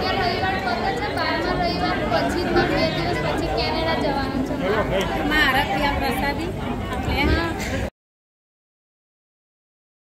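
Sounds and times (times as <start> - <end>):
people talking at once: 0.0 - 7.9.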